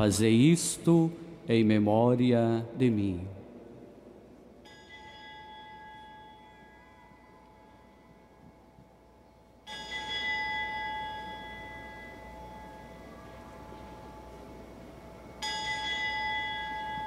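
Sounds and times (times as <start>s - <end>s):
altar bell ringing: 4.6s - 8.1s, 9.6s - 14.5s, 15.2s - 17.0s.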